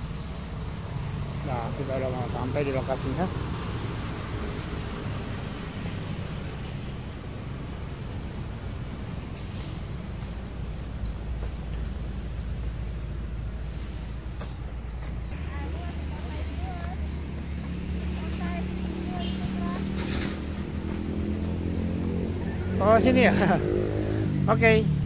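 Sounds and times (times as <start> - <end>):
distant road traffic rumble: 0.0 - 25.0.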